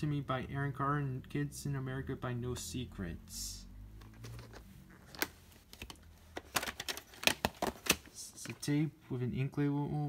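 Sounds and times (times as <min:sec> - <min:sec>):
plastic cassette case clicks: 0:05.1 - 0:08.0.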